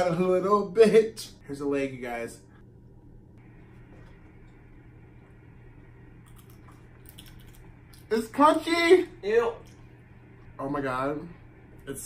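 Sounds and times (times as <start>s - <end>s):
low room hum: 0.0s - 12.0s
soft crunching of chewing: 3.5s - 8.1s.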